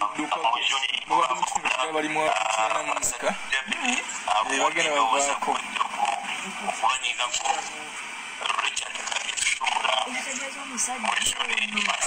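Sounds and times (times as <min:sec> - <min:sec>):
person speaking through phone speaker: 0:00.0 - 0:12.0.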